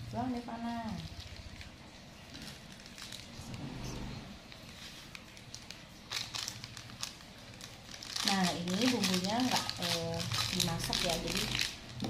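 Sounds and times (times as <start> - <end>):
plastic sachets crinkling: 0.3 - 3.5, 4.4 - 12.0
scissors cutting plastic: 4.6 - 12.0.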